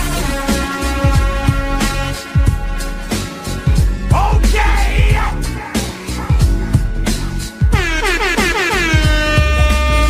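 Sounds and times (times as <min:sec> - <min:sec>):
air horn effect: 0:00.0 - 0:04.1, 0:07.6 - 0:10.0
hip-hop beat with bass kicks: 0:00.0 - 0:10.0.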